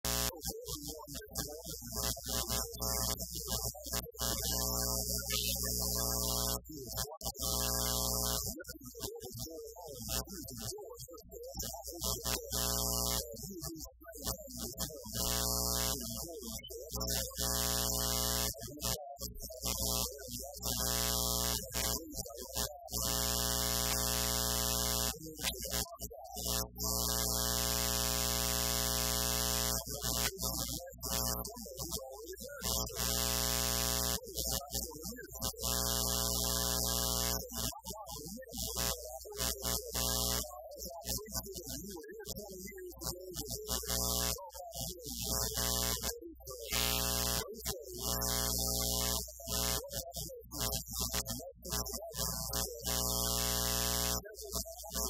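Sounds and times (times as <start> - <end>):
loud electrical buzz: 0.0 - 9.1, 11.7 - 13.3, 14.2 - 16.1, 16.8 - 31.4, 32.6 - 34.8, 35.4 - 37.8, 38.6 - 40.5, 43.4 - 44.4, 45.2 - 46.1, 46.7 - 54.3
faint man's voice: 0.1 - 33.4, 34.0 - 55.0.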